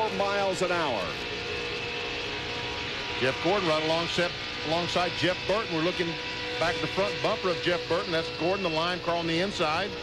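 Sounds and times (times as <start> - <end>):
race car engine running: 0.0 - 10.0.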